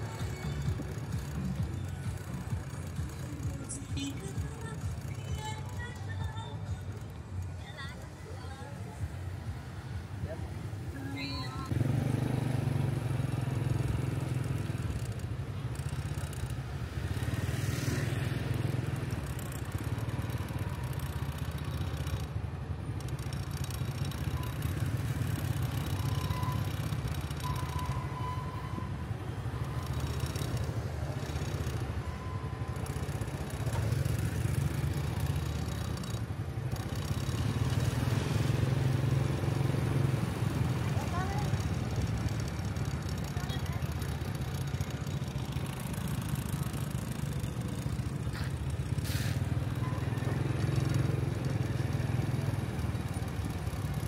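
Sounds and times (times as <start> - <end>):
motorbike engines drone: 0.0 - 54.0.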